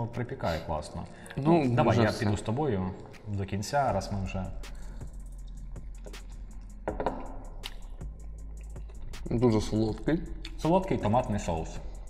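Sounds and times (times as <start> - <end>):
soft background music: 0.0 - 12.0
wet mouth clicks and chewing: 4.7 - 6.8, 7.6 - 9.3, 9.9 - 10.6.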